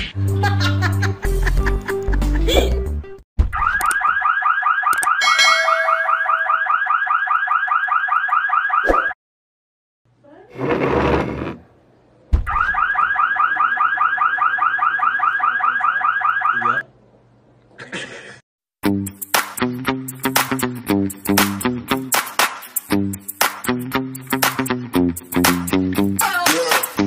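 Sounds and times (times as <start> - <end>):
car alarm siren wailing: 3.6 - 9.2, 12.5 - 16.8.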